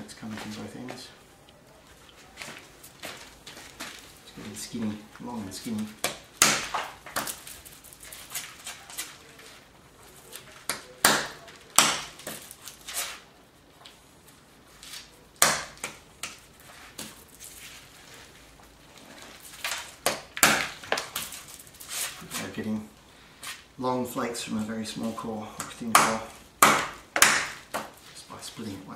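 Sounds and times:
stone striking stone: 25.9 - 27.9.

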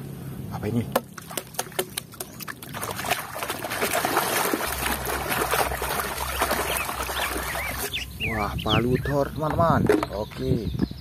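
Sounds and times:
toy hammer splashing in water: 1.2 - 7.9.

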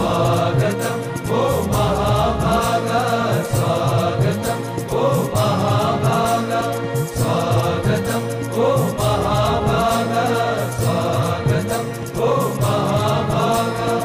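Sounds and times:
steady held drone: 0.0 - 14.0
voices chanting: 0.0 - 14.0.

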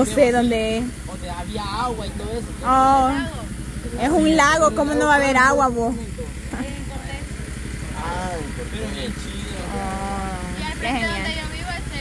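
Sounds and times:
engine rumble idling: 0.0 - 12.0
faint voices: 0.0 - 12.0.

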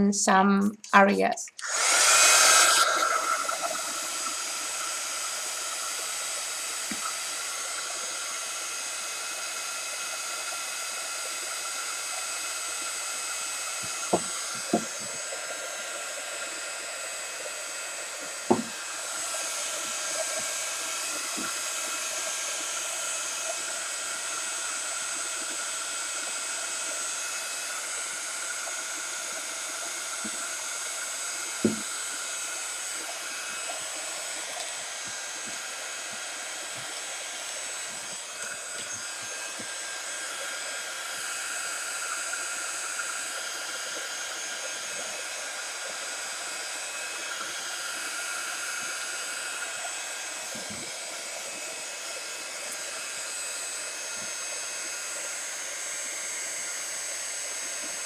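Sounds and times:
heat gun fan whining: 0.0 - 58.0.

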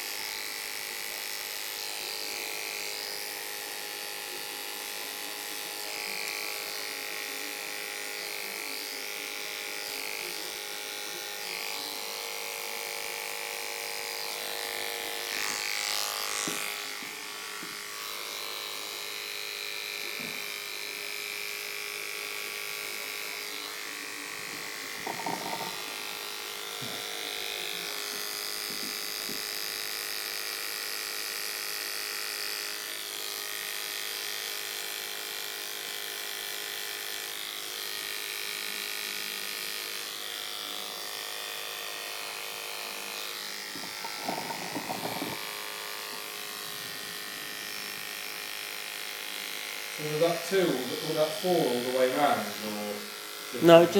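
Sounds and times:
electric hair clippers buzzing: 0.0 - 53.9.

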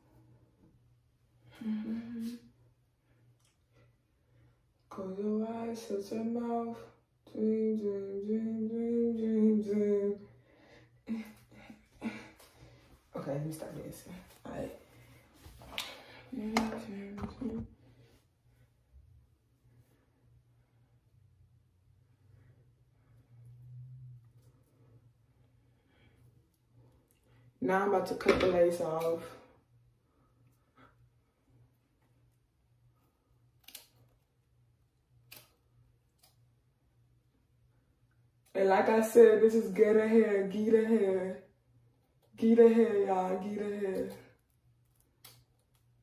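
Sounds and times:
scissors snipping: 33.6 - 34.0.

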